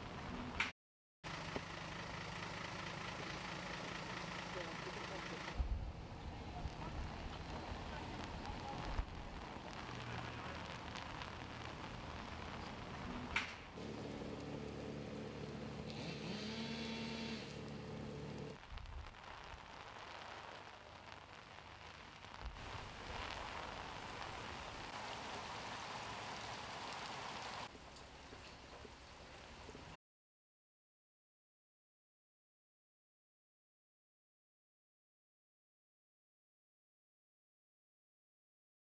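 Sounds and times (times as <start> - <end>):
steady rain hiss: 2.4 - 30.0.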